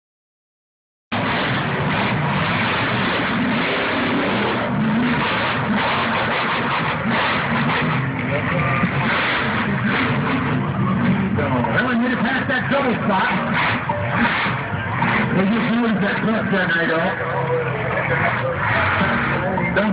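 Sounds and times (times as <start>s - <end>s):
truck engine revving: 1.1s - 19.9s.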